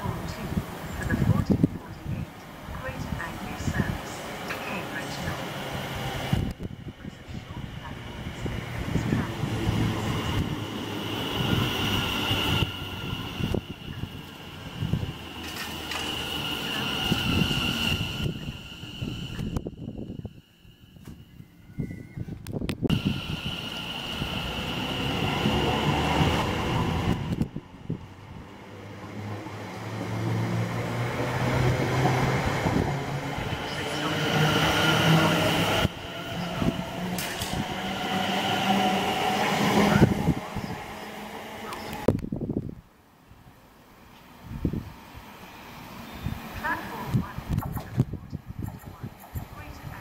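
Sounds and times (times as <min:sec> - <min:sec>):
train passing close by: 0:00.0 - 0:42.7, 0:43.3 - 0:50.0.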